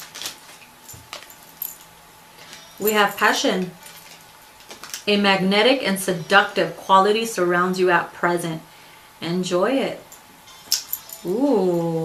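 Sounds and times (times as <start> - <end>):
bracelets jingling: 0.8 - 2.0, 2.7 - 5.0, 10.5 - 11.4
woman speaking: 2.8 - 3.8, 5.0 - 10.1, 11.2 - 12.0.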